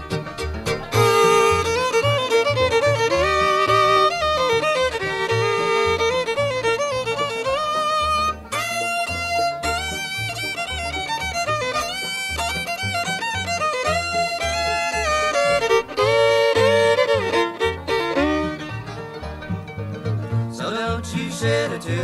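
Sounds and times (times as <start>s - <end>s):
bluegrass fiddle: 0.0s - 22.0s
strummed acoustic guitar: 0.0s - 22.0s
upright bass: 0.0s - 22.0s.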